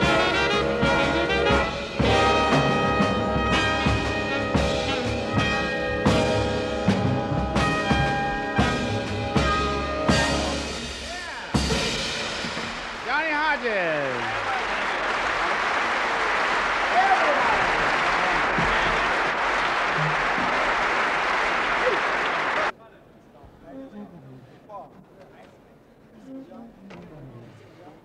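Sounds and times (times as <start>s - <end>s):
big band music: 0.0s - 14.6s
audience applauding: 12.4s - 22.7s.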